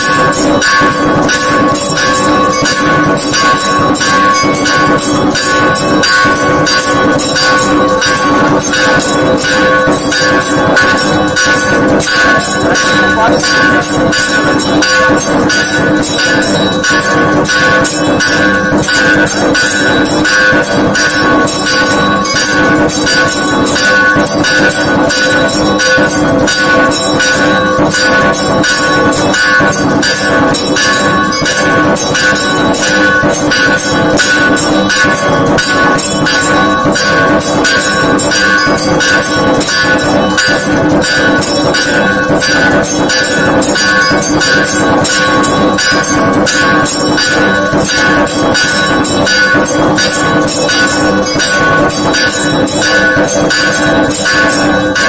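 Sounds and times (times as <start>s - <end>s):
bells ringing: 0.0s - 55.0s
fast percussion beat: 0.0s - 55.0s.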